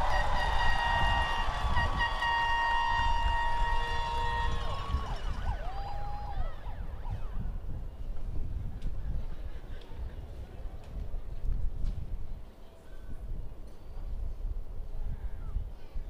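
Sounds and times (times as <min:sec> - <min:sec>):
air horns blaring: 0:00.0 - 0:05.5
crowd whoops: 0:00.0 - 0:07.0.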